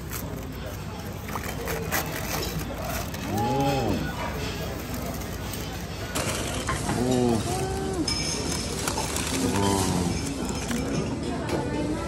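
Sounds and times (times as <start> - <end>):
foil crinkling and tearing: 0.0 - 11.0.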